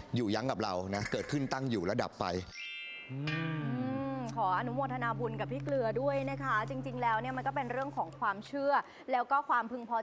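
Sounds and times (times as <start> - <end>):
low falling moo-like voice: 3.1 - 4.4
woman speaking: 3.5 - 10.0
sustained background chord: 3.7 - 8.4.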